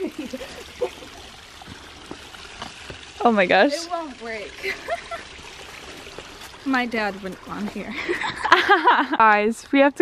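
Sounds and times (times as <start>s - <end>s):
creek water trickling: 0.0s - 10.0s.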